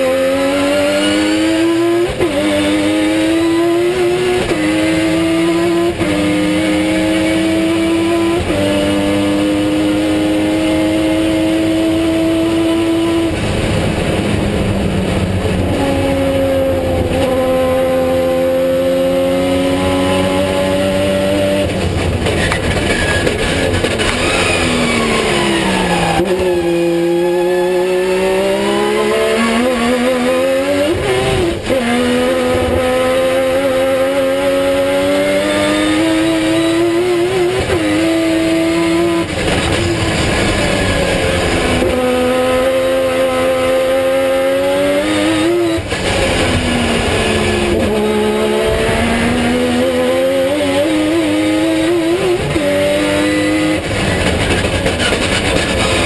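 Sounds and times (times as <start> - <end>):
race car engine accelerating: 0.0 - 56.0.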